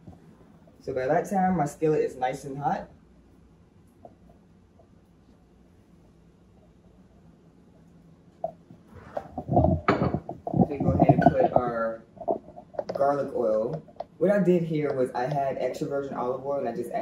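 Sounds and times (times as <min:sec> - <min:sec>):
person speaking: 0:09.0 - 0:17.0.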